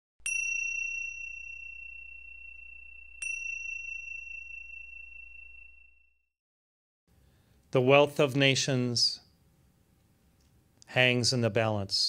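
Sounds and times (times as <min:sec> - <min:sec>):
high-pitched bell ringing: 0:00.2 - 0:06.2.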